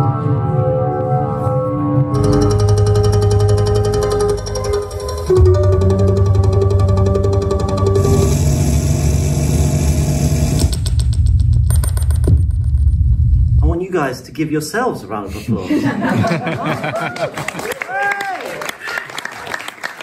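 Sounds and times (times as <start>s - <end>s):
electronic music: 0.0s - 13.8s
fast pulsing clicks: 2.2s - 11.6s
deep bass drone: 2.2s - 13.8s.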